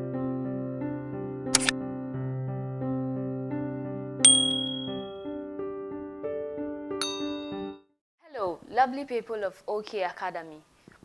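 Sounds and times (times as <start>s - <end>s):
keyboard music jingle: 1.8s - 7.9s
bright bell-like ding: 4.3s - 5.2s, 7.0s - 7.8s.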